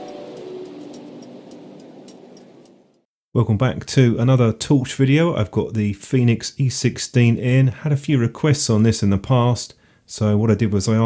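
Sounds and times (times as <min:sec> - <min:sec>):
electronic music sting: 0:00.0 - 0:02.6.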